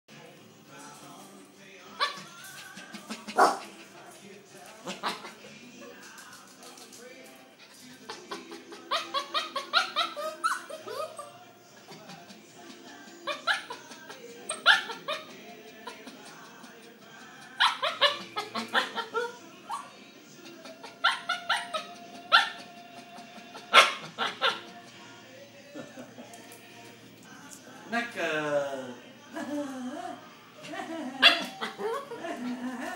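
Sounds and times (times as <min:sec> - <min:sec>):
music: 0:00.1 - 0:32.9
puppy barking: 0:03.2 - 0:03.7, 0:14.5 - 0:15.3, 0:17.6 - 0:19.9, 0:20.8 - 0:22.6, 0:23.6 - 0:24.7.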